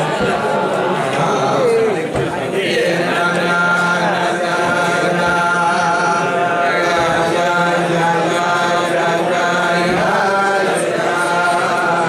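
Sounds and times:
men singing together: 0.0 - 12.0.

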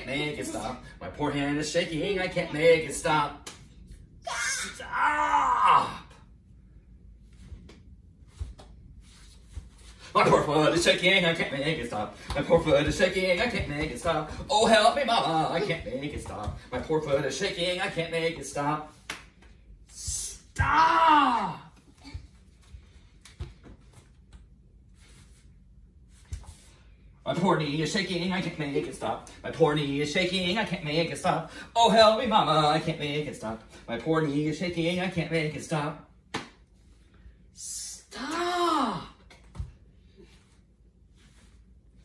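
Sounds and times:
person wailing: 4.2 - 6.2, 20.1 - 22.2, 38.2 - 39.2.

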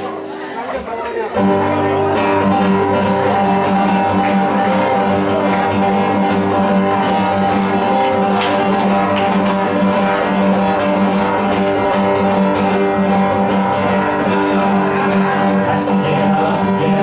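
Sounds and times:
acoustic guitar chords: 0.0 - 17.0.

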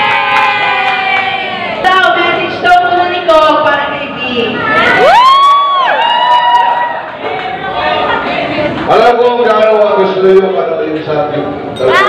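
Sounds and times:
crowd cheering: 0.0 - 2.0, 4.6 - 8.4.

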